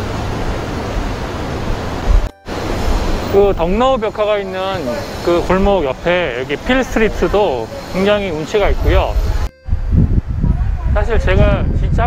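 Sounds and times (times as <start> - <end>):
wind buffeting microphone: 8.6 - 12.0.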